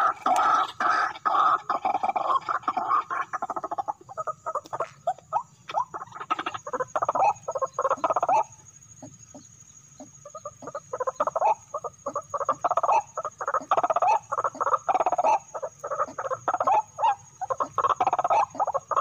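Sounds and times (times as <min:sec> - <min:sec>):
birds croaking calls: 0:00.0 - 0:19.0.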